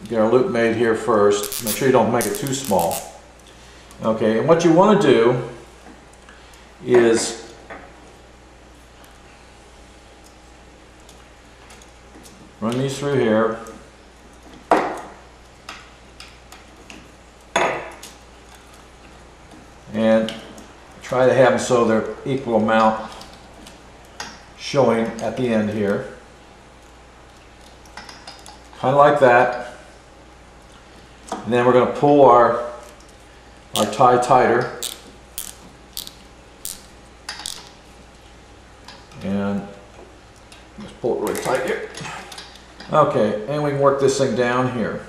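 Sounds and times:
hands handling zip tie and wires: 0:01.4 - 0:03.1, 0:34.8 - 0:37.8.

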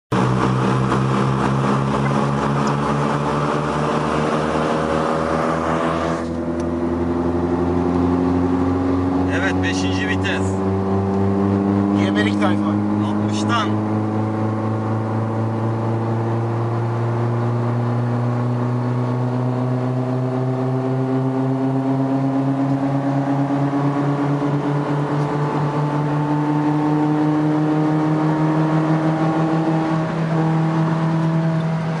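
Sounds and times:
car engine accelerating: 0:00.1 - 0:32.0.

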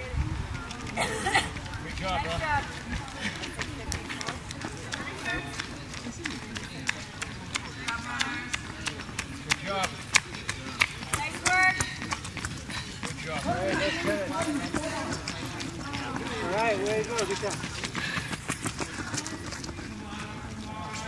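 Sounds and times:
running footsteps on asphalt: 0:00.0 - 0:21.0.

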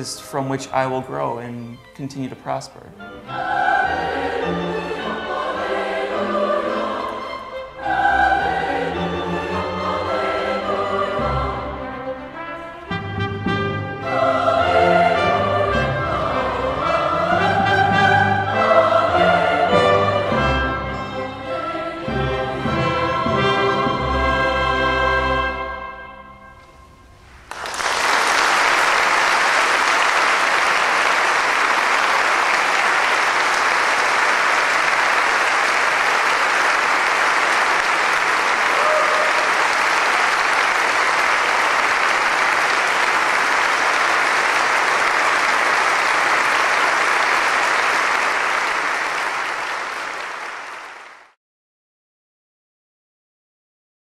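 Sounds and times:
choir and orchestra chord: 0:03.0 - 0:27.1
audience applause: 0:27.4 - 0:51.4.

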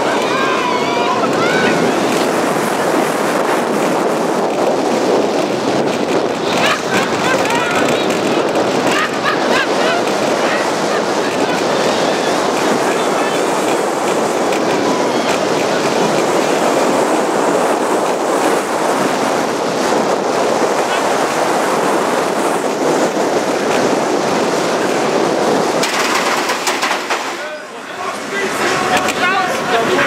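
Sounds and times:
roller coaster rushing on track: 0:00.0 - 0:30.0.

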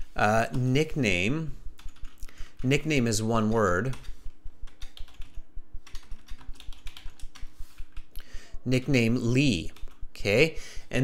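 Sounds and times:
computer keyboard typing: 0:00.3 - 0:00.9, 0:01.8 - 0:08.2, 0:08.8 - 0:10.3.

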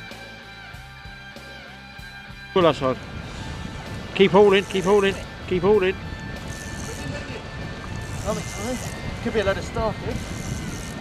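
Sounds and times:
faint background music: 0:02.3 - 0:11.0
wind rumbling on microphone: 0:02.6 - 0:11.0.

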